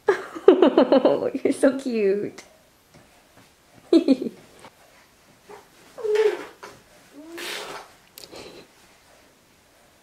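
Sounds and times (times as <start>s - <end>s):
infant cooing: 5.5s - 7.8s
infant breathy burst: 7.2s - 7.9s.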